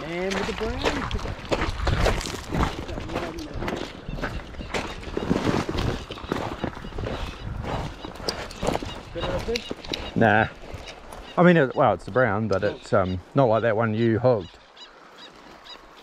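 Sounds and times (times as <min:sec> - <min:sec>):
footsteps crunching on stones: 0:00.0 - 0:12.8.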